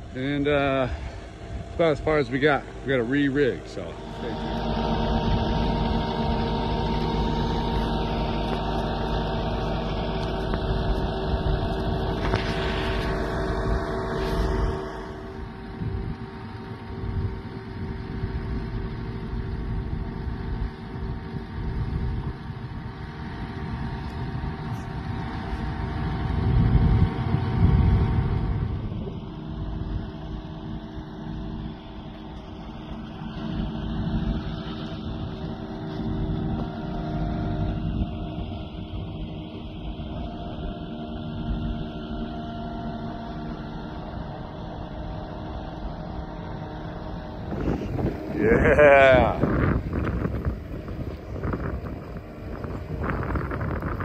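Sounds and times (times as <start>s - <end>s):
diesel engine running under load: 0.0s - 54.0s.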